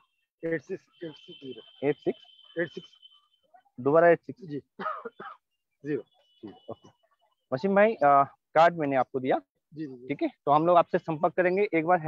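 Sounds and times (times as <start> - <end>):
man speaking: 0.4 - 3.0, 3.8 - 5.1, 5.8 - 6.9, 7.5 - 12.0
high-pitched insect call: 0.6 - 3.5.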